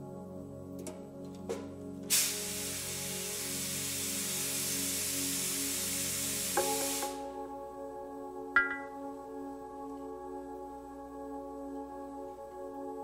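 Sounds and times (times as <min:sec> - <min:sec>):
hiss: 0:02.1 - 0:07.4.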